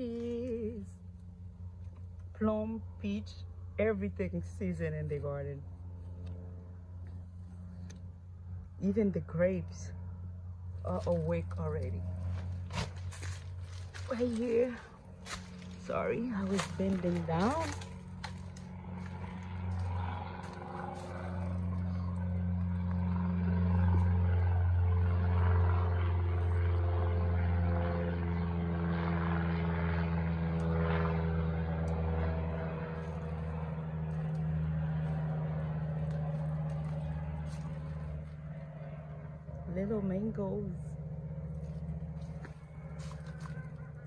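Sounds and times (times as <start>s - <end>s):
low engine drone: 0.0s - 44.0s.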